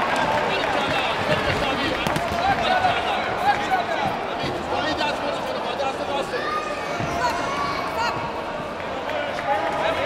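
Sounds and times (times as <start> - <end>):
people shouting and talking: 0.0 - 10.0.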